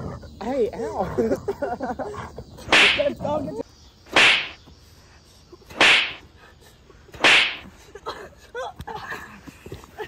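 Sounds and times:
whip-like swishing hits: 2.7s - 3.1s, 4.1s - 4.6s, 5.7s - 6.3s, 7.2s - 7.7s.

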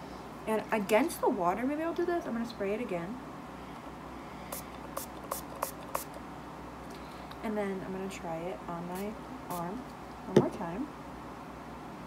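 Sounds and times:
spray bottle hissing: 4.5s - 6.2s, 9.5s - 9.7s.

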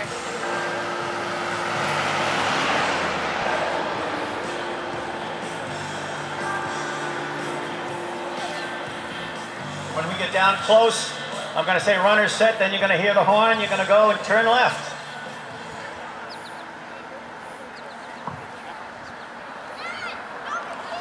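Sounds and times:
crowd voices: 0.0s - 21.0s
faint music: 0.0s - 21.0s
motor vehicle passing: 0.0s - 21.0s.

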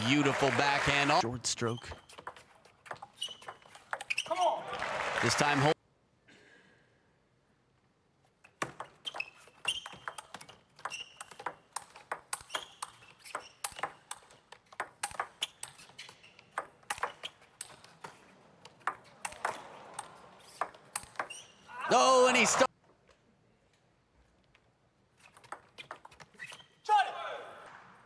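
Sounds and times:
shoes squeaking on floor: 1.6s - 4.5s, 8.4s - 21.7s, 25.2s - 26.9s
table tennis ball clicking: 8.6s - 21.4s.

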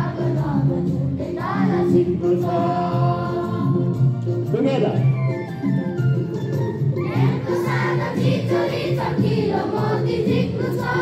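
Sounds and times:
children singing together: 0.0s - 2.2s, 7.0s - 11.0s.

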